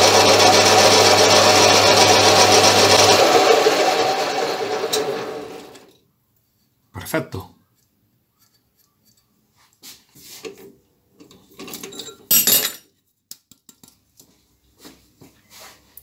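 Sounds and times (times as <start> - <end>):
metal ring clinking and scraping: 11.6 - 12.8.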